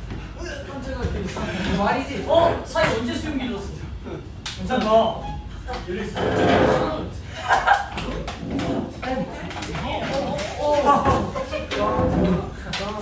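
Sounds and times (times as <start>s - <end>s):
young men talking and exclaiming: 0.3s - 13.0s.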